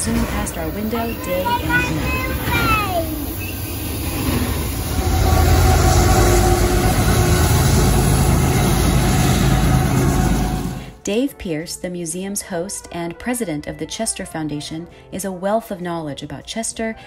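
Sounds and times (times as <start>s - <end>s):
freight train wheels rumbling: 0.0s - 11.0s.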